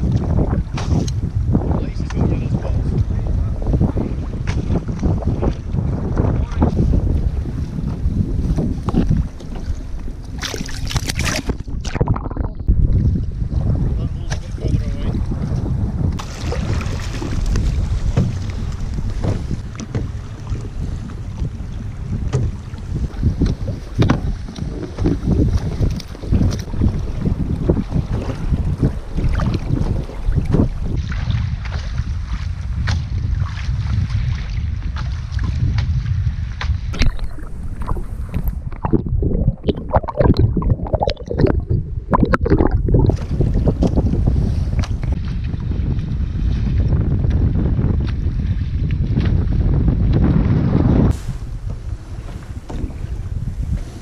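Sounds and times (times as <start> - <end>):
water slapping against kayak: 0.0 - 54.0
wind buffeting microphone: 0.0 - 54.0.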